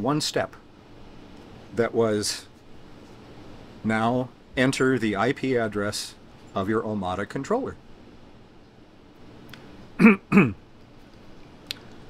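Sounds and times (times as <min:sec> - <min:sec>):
man clearing his throat: 0:10.0 - 0:10.6.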